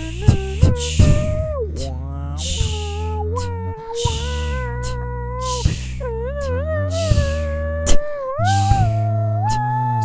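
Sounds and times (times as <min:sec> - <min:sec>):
vocal snare-like hit: 0:00.0 - 0:06.0
low sung drone: 0:00.0 - 0:10.0
wordless lead voice sliding pitch: 0:00.0 - 0:10.0.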